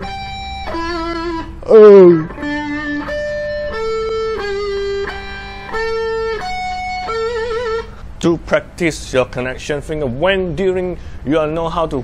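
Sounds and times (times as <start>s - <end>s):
electric guitar lead notes: 0.0s - 8.2s.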